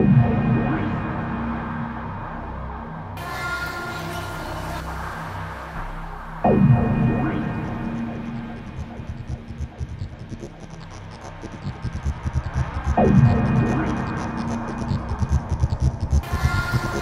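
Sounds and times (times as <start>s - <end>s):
low throbbing drone: 0.0s - 3.2s, 4.4s - 17.0s.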